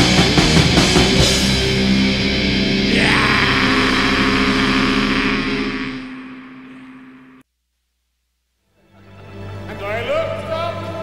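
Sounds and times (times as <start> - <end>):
distorted guitar chord ringing: 0.0 - 7.4
steady low note: 0.0 - 7.4.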